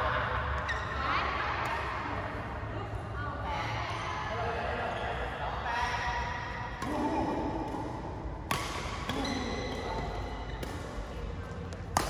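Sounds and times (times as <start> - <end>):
people talking: 0.0 - 7.8.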